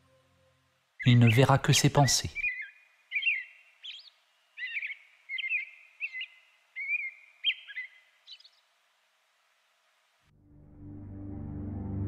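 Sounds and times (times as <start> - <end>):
songbird chirping: 0.0 - 10.3.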